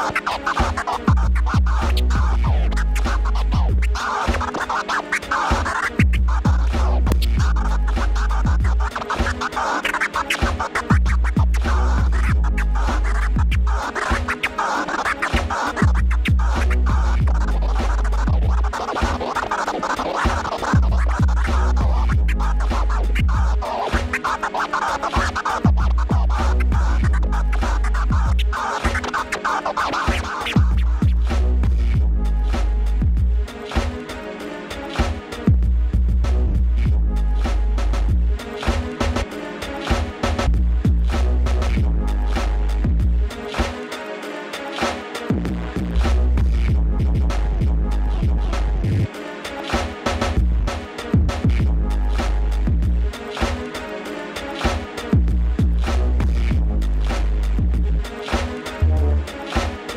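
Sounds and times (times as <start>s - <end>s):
record scratching on turntable: 0.0s - 32.8s, 44.8s - 53.8s, 54.4s - 59.9s
backing track with deep bass: 0.0s - 44.0s, 44.8s - 59.9s.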